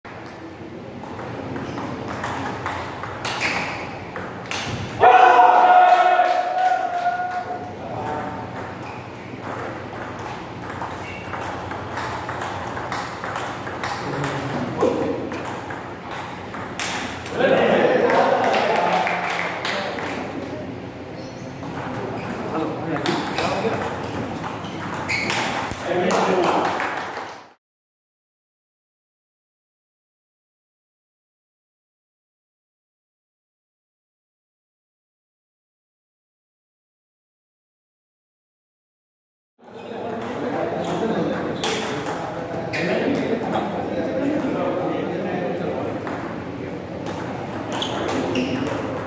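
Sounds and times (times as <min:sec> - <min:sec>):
table tennis ball hits: 0:00.2 - 0:05.4, 0:06.0 - 0:17.4, 0:21.6 - 0:27.1, 0:40.0 - 0:43.8, 0:45.8 - 0:49.0
voices in a hall: 0:04.8 - 0:08.8, 0:13.9 - 0:15.6, 0:16.2 - 0:26.9, 0:39.6 - 0:49.0
loud held shout: 0:05.0 - 0:07.7.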